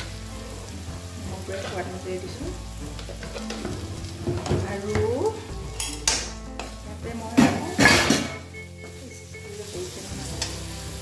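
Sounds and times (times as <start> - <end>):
onion and spices sizzling in oil: 0.0 - 11.0.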